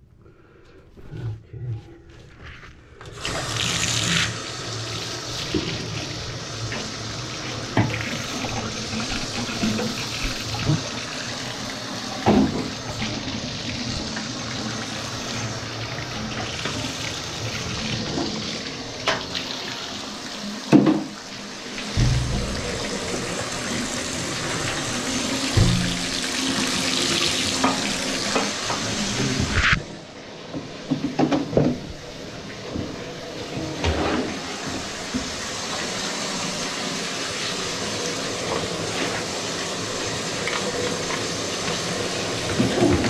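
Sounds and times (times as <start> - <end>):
water running from a tap: 3.1 - 29.6, 34.4 - 43.0.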